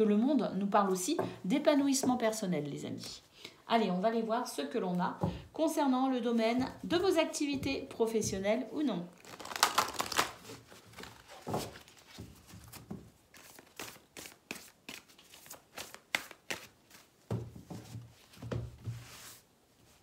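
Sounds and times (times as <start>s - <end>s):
cards shuffling: 9.2s - 17.1s
cards spread on cloth: 13.3s - 17.1s.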